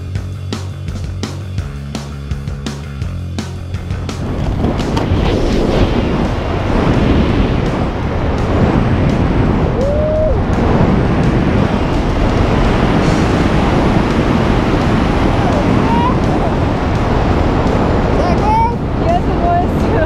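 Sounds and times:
wind rushing over microphone: 3.0 - 20.0
person exclaiming: 9.8 - 10.4.

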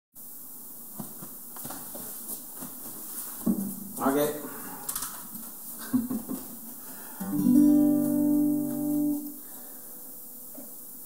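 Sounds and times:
room hiss: 0.2 - 11.0
guitar string ringing: 7.2 - 9.3.

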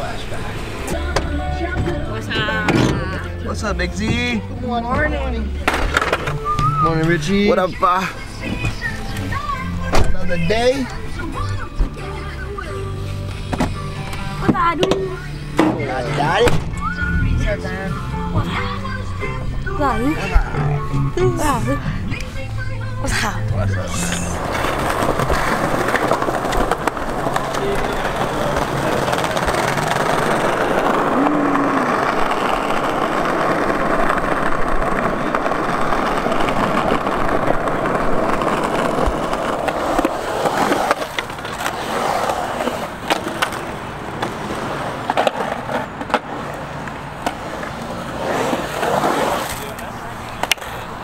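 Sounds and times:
skateboard wheels rolling: 0.0 - 23.0, 24.1 - 51.0
skateboard clacks: 5.6 - 6.8, 24.3 - 51.0.

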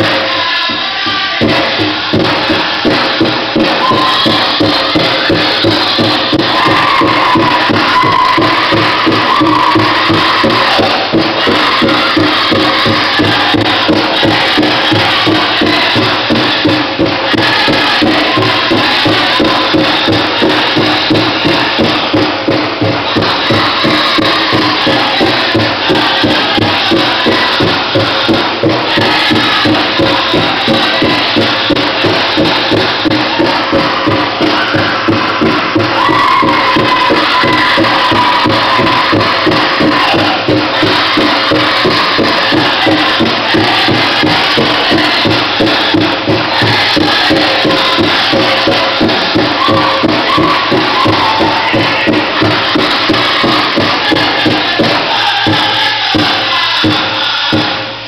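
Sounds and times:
big drum beating: 0.0 - 58.0
group singing: 0.0 - 58.0.

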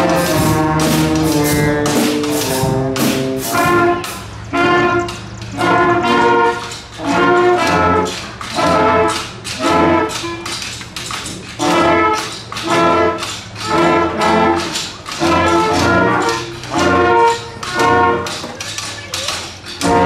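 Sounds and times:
concert band playing accented chords: 0.0 - 10.6, 11.5 - 18.4, 19.7 - 20.0.

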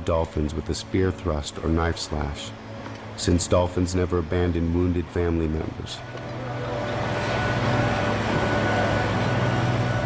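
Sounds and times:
engine drone: 0.0 - 10.0.

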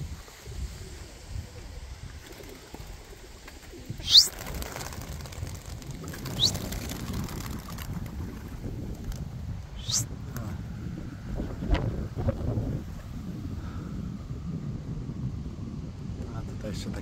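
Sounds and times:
wind on microphone: 0.0 - 17.0
pigeon wings flapping: 2.2 - 9.3
short rising whistles: 4.0 - 4.4, 9.8 - 10.1.

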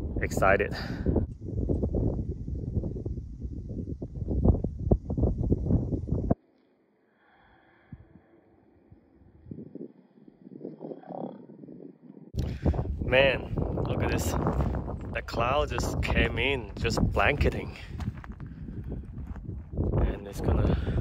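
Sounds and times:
wind buffeting microphone: 0.0 - 6.4, 7.9 - 21.0.

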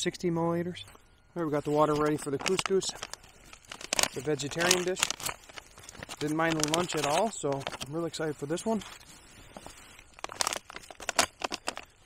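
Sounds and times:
plastic pouch crinkling: 1.5 - 12.0.

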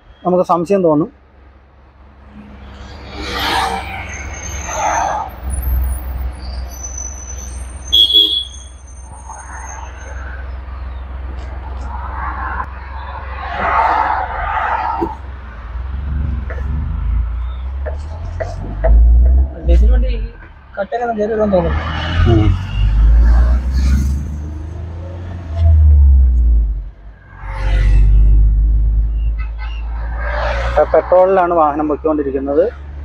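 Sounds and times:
short high beep: 7.1 - 9.2
engine low rumble: 15.0 - 20.8.

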